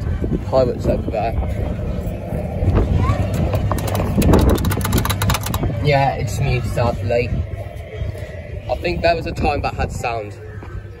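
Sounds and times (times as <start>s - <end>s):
faint voices: 0.0s - 11.0s
wind rumble on microphone: 0.0s - 11.0s
plastic steering wheel clicking: 3.7s - 5.7s.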